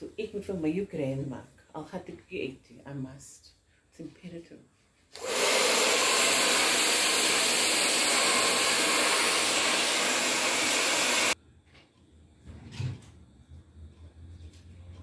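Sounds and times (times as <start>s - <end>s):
hair dryer blowing: 5.1s - 11.4s.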